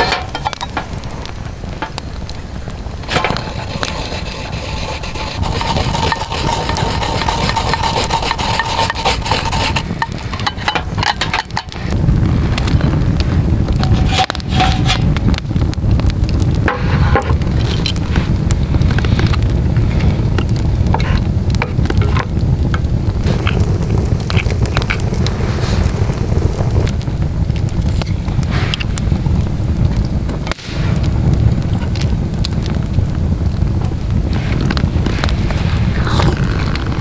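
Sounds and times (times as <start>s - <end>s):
campfire rumbling and crackling: 0.0s - 37.0s
root rasping on metal grater: 3.1s - 11.8s.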